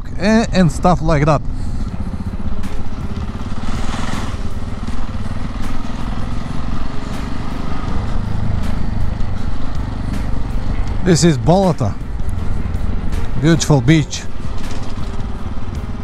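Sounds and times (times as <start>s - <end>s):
motorcycle engine running: 0.0s - 16.0s
wind and road noise: 0.0s - 16.0s.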